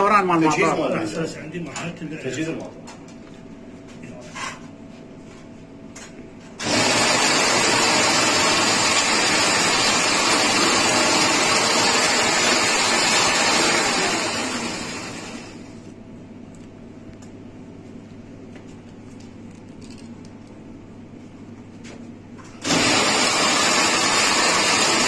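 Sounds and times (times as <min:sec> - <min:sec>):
coil winding machine running: 0:06.6 - 0:15.8, 0:22.6 - 0:25.0.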